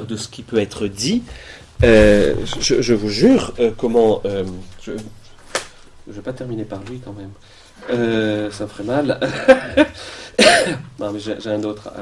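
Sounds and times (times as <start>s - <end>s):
man coughing: 9.3s - 10.9s.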